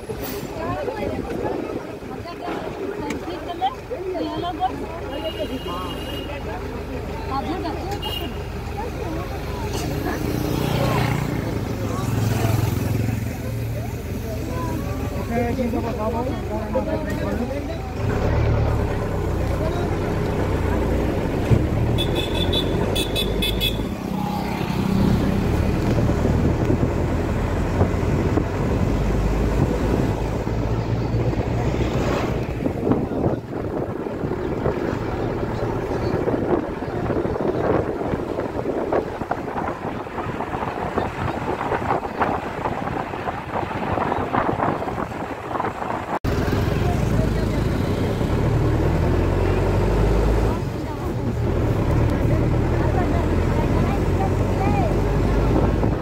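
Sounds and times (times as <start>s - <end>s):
vehicle road noise: 0.0s - 56.0s.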